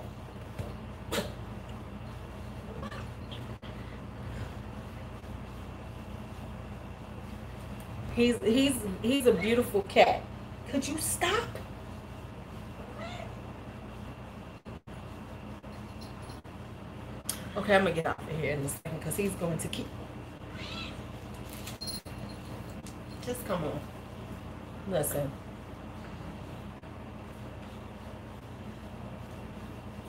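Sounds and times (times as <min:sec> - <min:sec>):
low steady hum: 0:00.0 - 0:30.0
cat meowing: 0:20.5 - 0:21.0.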